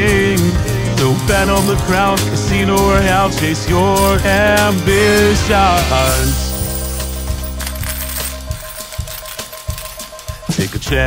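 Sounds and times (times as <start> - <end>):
song music: 0.0 - 11.0
coins dropping clinks: 0.8 - 11.0.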